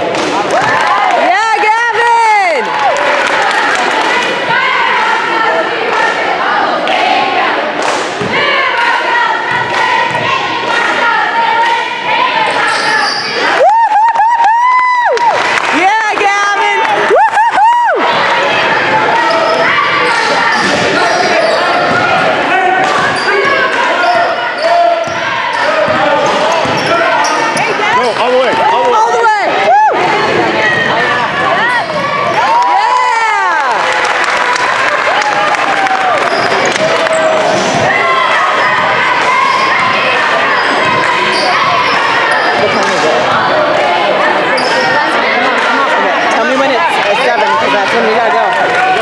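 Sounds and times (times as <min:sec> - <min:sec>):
spectators' voices echoing: 0:00.0 - 0:49.0.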